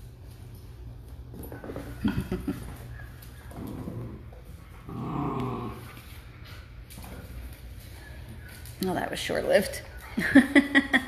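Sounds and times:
dog play growl: 1.3 - 7.6.

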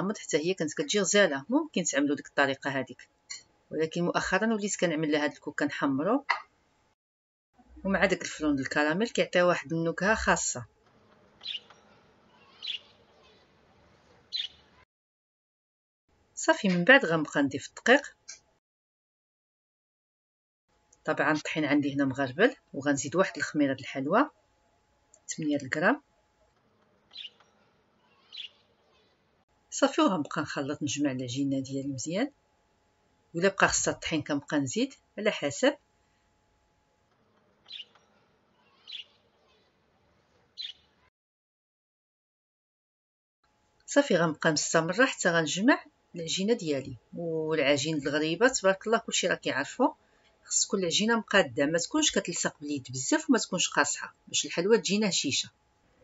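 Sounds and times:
faint background noise: 7.6 - 14.8, 20.7 - 41.1
high bird chirps: 11.4 - 13.4, 14.3 - 14.7, 27.1 - 29.1, 37.7 - 38.0, 38.6 - 39.6, 40.6 - 40.9.

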